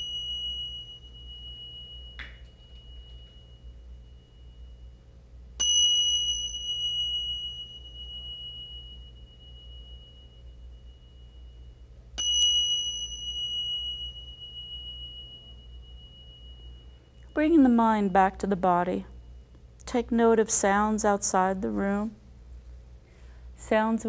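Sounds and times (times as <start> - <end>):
tingsha cymbals ringing: 0.0 - 19.8.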